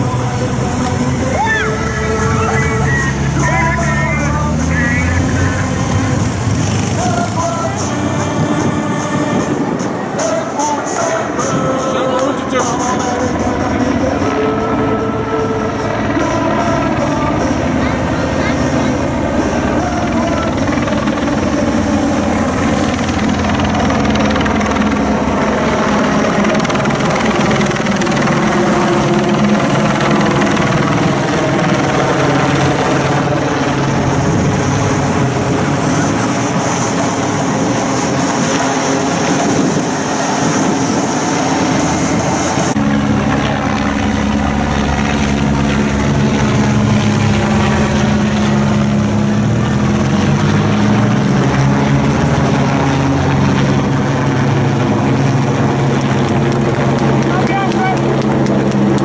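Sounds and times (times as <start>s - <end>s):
helicopter rotor and engine drone: 0.0s - 59.0s
motorbikes and cars passing: 0.0s - 59.0s.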